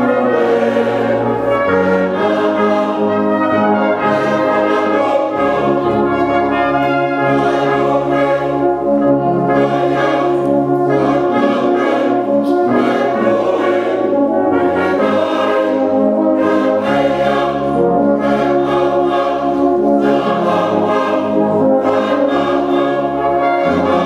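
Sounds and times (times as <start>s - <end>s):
brass band playing chords: 0.0s - 24.0s.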